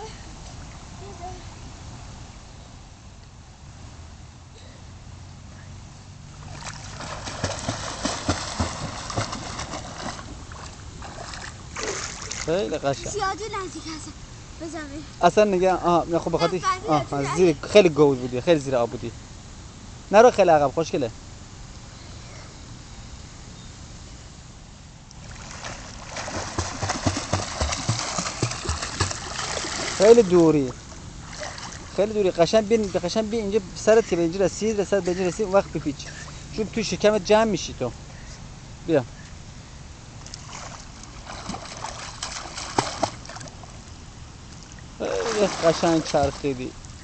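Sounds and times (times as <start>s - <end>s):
pool water splashing: 6.1s - 19.0s, 25.1s - 37.8s, 40.1s - 47.0s.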